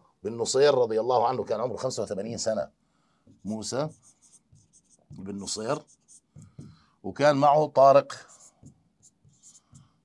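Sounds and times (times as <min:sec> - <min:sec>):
marker scratching on board: 0:03.3 - 0:06.8, 0:08.1 - 0:10.0.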